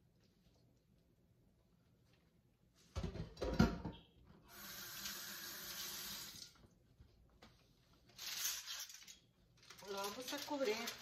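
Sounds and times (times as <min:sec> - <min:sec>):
kitchen tap running: 0:04.5 - 0:06.7.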